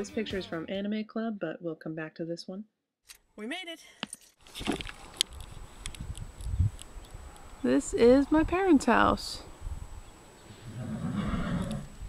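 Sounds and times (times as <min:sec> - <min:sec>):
horse neighing: 0:10.6 - 0:12.0.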